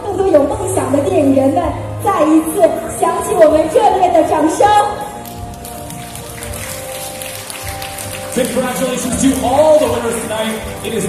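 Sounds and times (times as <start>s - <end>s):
background music: 0.0s - 11.0s
audience applause: 5.2s - 11.0s.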